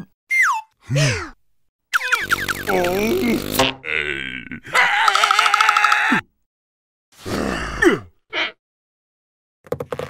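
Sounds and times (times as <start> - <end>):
cartoon creature grunting: 2.7 - 6.2.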